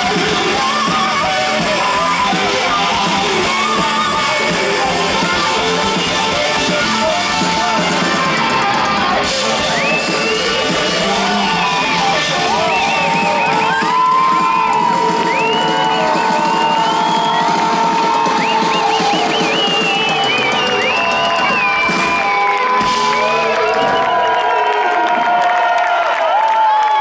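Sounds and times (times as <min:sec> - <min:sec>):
rock band playing live: 0:00.0 - 0:24.4
crowd cheering and whooping: 0:00.0 - 0:27.0.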